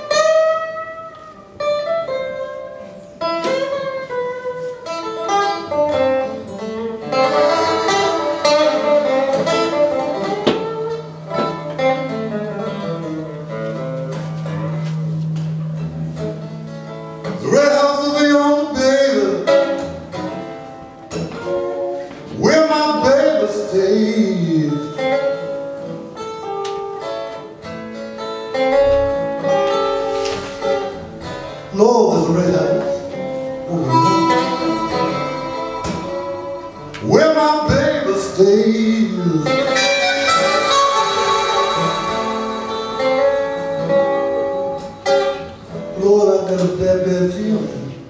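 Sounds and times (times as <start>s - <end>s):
harmonica: 0.0s - 13.9s, 33.1s - 36.9s, 39.4s - 45.8s
blues acoustic guitar: 0.0s - 48.0s.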